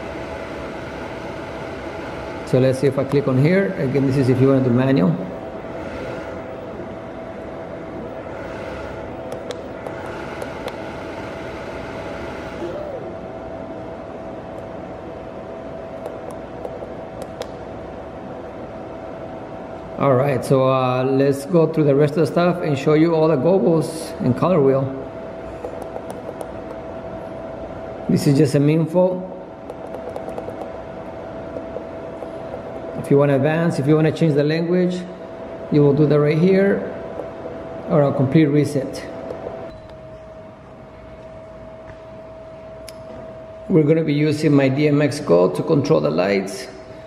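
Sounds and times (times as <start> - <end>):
light fan and motors whirring: 0.0 - 47.0.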